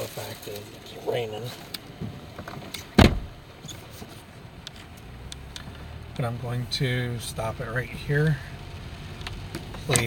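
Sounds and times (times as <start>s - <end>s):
rain ticking on vehicle: 0.0s - 3.6s, 4.4s - 10.0s
thump inside vehicle cabin: 2.0s - 3.4s.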